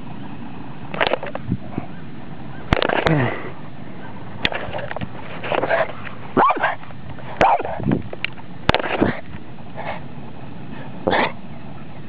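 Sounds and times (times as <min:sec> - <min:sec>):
dog barking: 0:05.7 - 0:06.8, 0:07.4 - 0:07.8.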